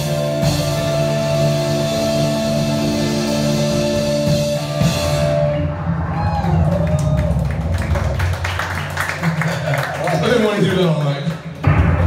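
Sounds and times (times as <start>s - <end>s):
audience cheering: 5.6s - 11.9s
audience clapping: 6.4s - 12.0s.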